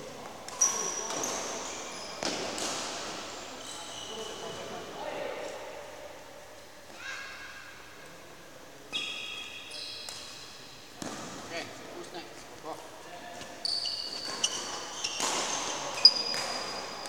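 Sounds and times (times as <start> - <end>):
shoes squeaking on floor: 0.5 - 2.7, 3.3 - 4.7, 13.3 - 17.0.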